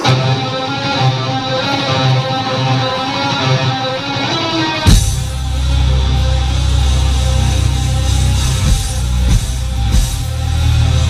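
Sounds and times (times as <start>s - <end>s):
electric guitar riff: 0.0s - 11.0s
metal band drums and bass hit: 4.9s - 11.0s.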